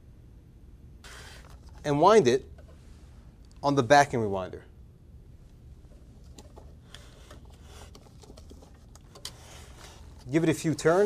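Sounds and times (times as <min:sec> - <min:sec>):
low steady hum: 0:00.0 - 0:11.0
paper rustle: 0:06.2 - 0:11.0.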